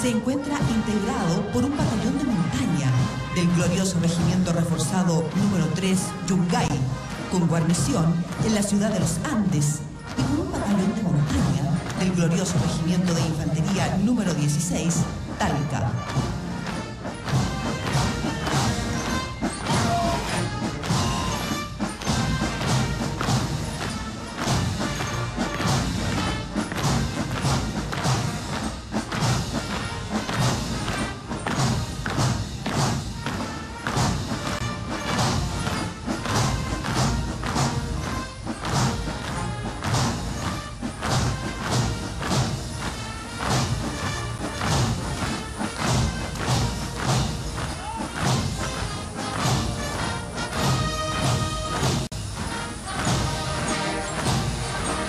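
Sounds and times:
military march music: 0:00.0 - 0:55.0
steady drum beat: 0:00.0 - 0:55.0.

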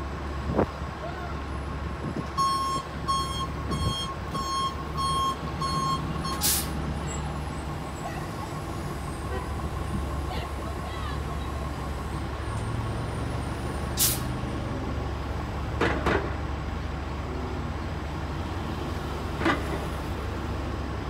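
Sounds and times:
diesel bus idling: 0:00.0 - 0:21.0
hiss of released air: 0:06.4 - 0:06.8, 0:14.0 - 0:14.3.

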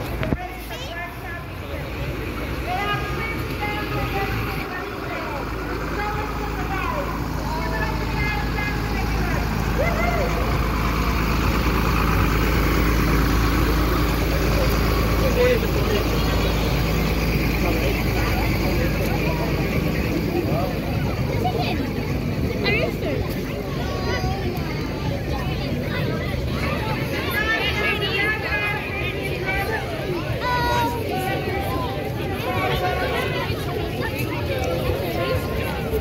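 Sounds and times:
crowd voices: 0:00.0 - 0:36.0
diesel lorry engine passing: 0:00.0 - 0:36.0.

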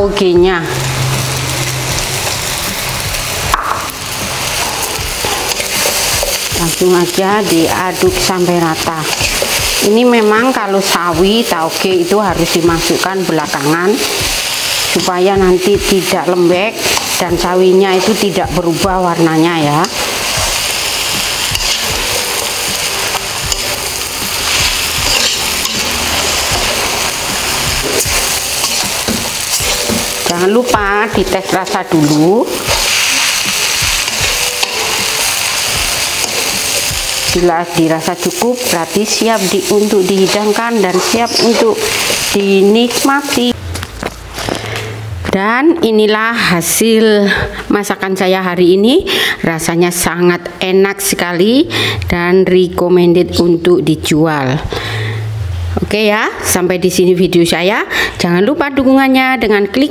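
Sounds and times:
food sizzling in a wok: 0:00.2 - 0:44.8
spatula scraping and knocking pan: 0:19.8 - 0:35.0, 0:38.2 - 0:44.7.

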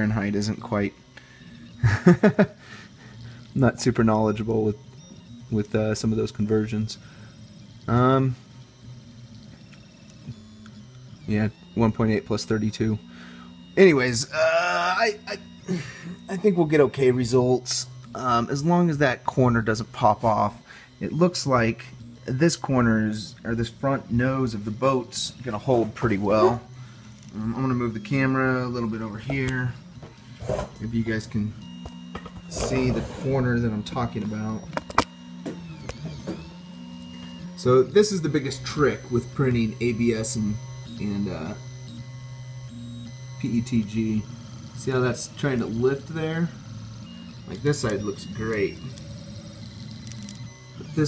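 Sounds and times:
printer stepper motors humming: 0:00.0 - 0:51.0.

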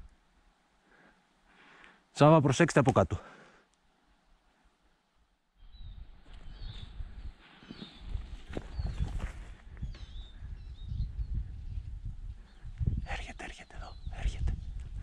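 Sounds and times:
small birds chirping: 0:05.6 - 0:15.0
wind rumble on microphone: 0:05.7 - 0:15.0.

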